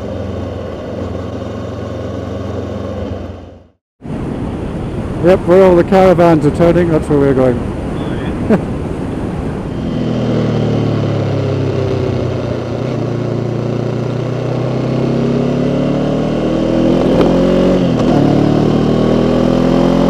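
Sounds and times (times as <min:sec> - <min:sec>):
motorcycle engine accelerating: 0:00.0 - 0:03.8, 0:09.0 - 0:20.0.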